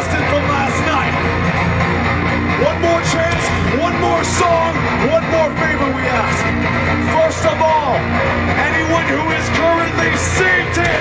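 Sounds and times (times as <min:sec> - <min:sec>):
loud electric guitar through pa: 0:00.0 - 0:11.0.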